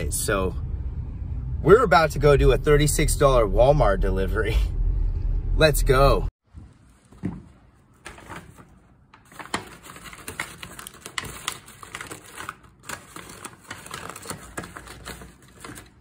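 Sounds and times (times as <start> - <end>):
paper bag crinkling: 7.8 - 16.0.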